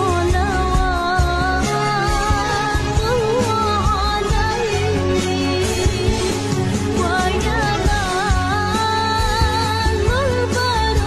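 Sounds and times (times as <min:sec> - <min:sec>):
bass and drums: 0:00.0 - 0:11.0.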